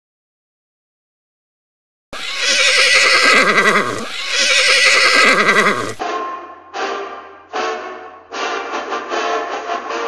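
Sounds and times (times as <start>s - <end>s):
horse whinnying: 2.2s - 6.0s.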